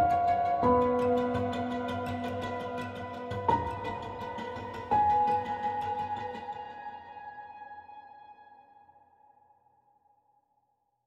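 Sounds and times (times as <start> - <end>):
relaxation music held tones: 0.0 - 8.2.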